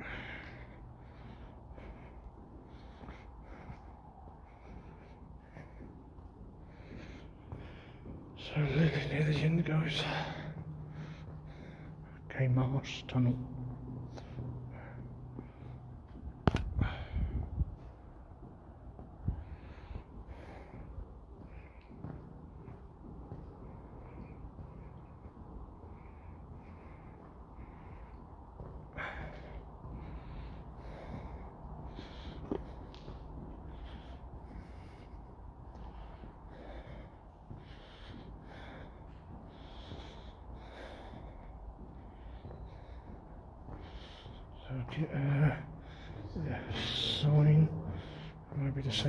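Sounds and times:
footsteps on gritty floor: 0.0s - 49.0s
low steady rumble: 0.0s - 49.0s.

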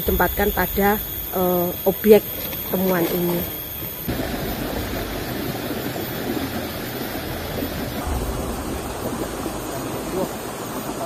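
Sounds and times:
water rushing in a stream: 1.1s - 11.0s.

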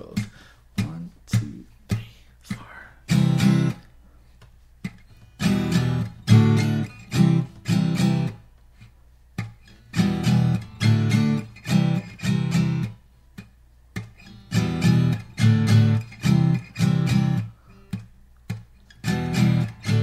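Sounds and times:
acoustic guitar strumming: 0.0s - 3.9s, 4.8s - 20.0s.

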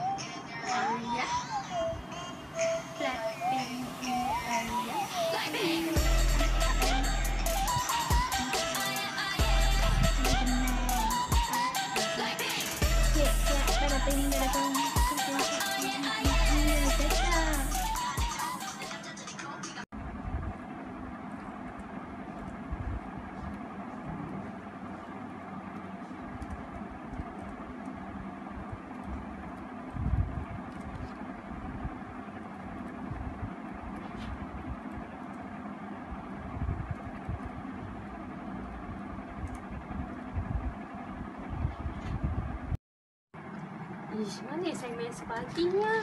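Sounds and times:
phone music: 0.0s - 19.3s
low room rumble: 0.0s - 42.8s, 43.4s - 46.0s.

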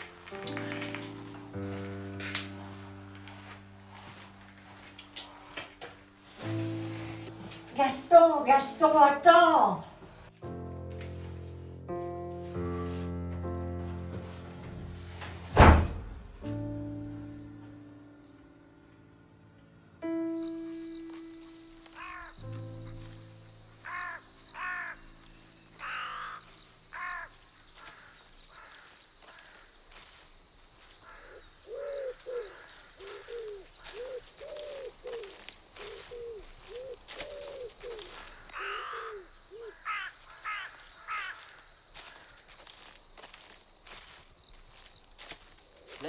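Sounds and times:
held musical chord: 0.0s - 15.6s, 16.2s - 26.8s
birds chirping: 20.3s - 43.2s.

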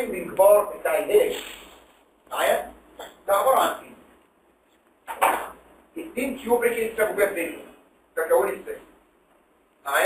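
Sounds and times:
man speaking: 0.0s - 4.1s, 5.9s - 8.9s.

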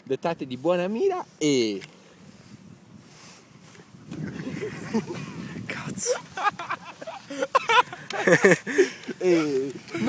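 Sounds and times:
people laughing: 4.3s - 5.4s, 6.0s - 10.0s.

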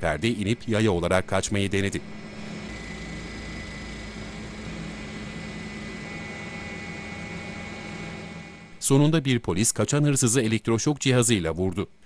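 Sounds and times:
faint high whine: 0.0s - 9.6s
helicopter engine and rotors: 1.9s - 8.8s.

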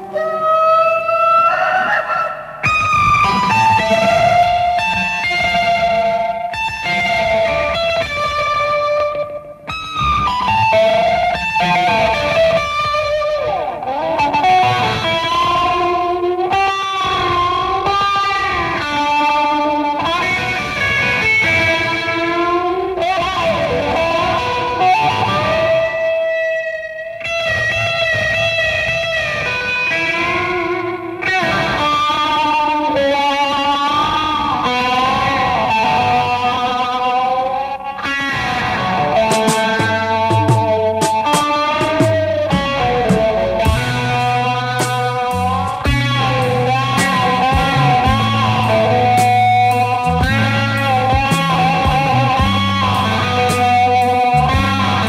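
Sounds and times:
distorted lead electric guitar: 0.0s - 55.0s
bass guitar: 1.9s - 55.0s
drums: 2.6s - 22.4s, 39.2s - 55.0s.

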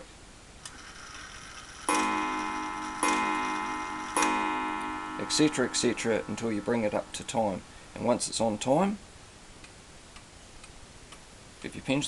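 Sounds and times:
mantel clock striking: 0.7s - 7.7s
faint clock click: 9.6s - 11.3s.

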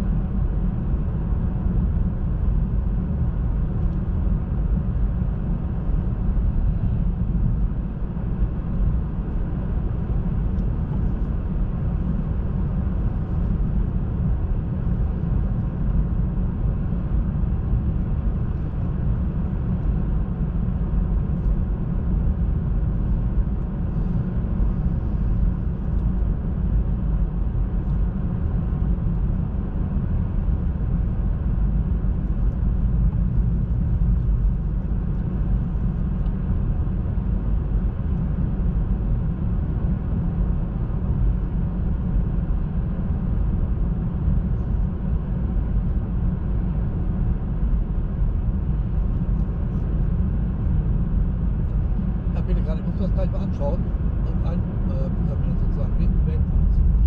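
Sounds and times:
tyre and road rumble in car cabin: 0.0s - 57.0s.

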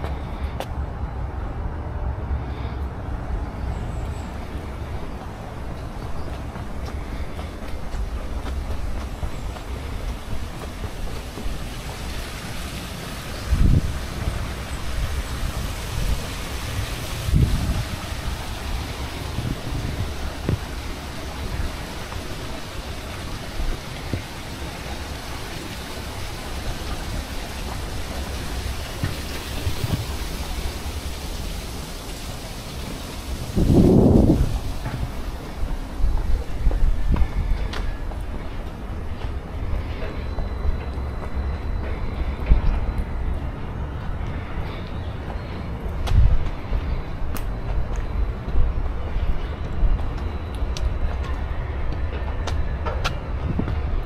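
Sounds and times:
wind rumble on microphone: 0.0s - 54.0s.

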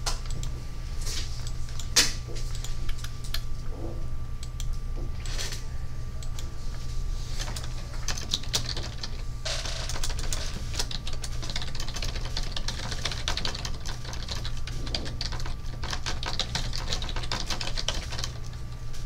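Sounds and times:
low steady hum: 0.0s - 19.0s
rapid clicking and tapping: 7.4s - 18.6s.

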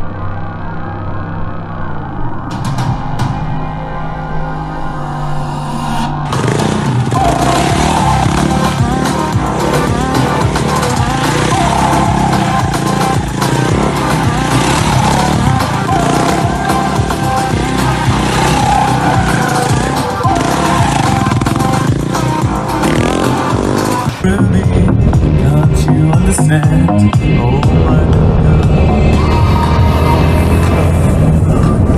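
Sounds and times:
backing music: 0.0s - 31.9s
motorcycle engine running: 6.3s - 31.9s.

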